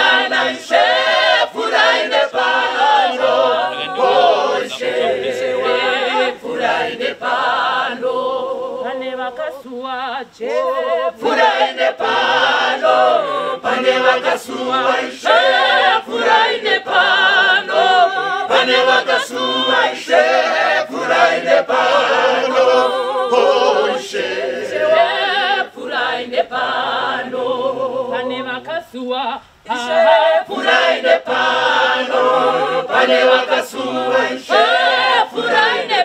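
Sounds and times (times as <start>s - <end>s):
choir singing a cappella: 0.0s - 28.8s, 29.5s - 36.0s.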